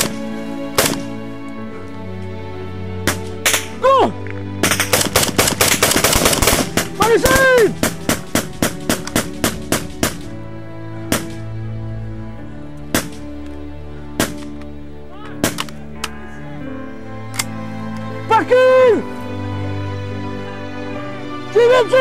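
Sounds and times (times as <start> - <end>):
steady background music: 0.0 - 22.0
automatic gunfire: 4.6 - 10.2.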